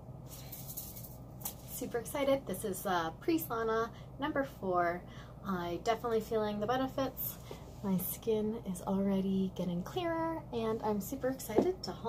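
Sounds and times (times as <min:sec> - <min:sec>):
low room hum: 0:00.0 - 0:12.0
woman speaking: 0:01.7 - 0:12.0.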